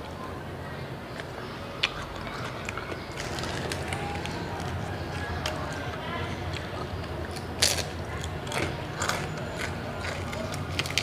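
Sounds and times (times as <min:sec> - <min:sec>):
crunchy chewing of fried snack: 0:01.0 - 0:11.0.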